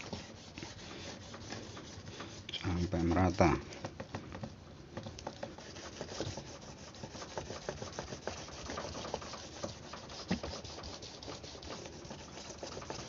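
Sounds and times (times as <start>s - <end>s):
scratchy rubbing on plastic sheet: 0.0s - 3.7s, 5.3s - 13.0s.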